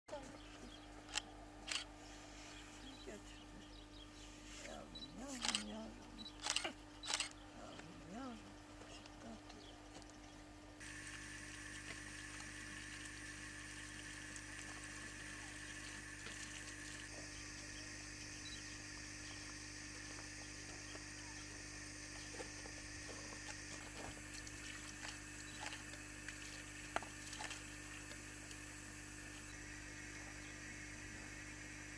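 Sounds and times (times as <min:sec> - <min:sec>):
high-pitched hum with hiss: 0:00.1 - 0:31.9
woman's low voice: 0:02.8 - 0:03.9, 0:04.5 - 0:06.8, 0:07.4 - 0:09.8.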